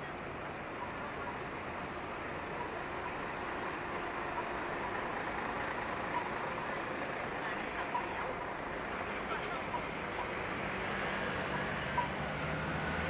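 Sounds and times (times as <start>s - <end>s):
indistinct voices of passers-by: 0.0s - 12.8s
traffic noise: 0.0s - 13.0s.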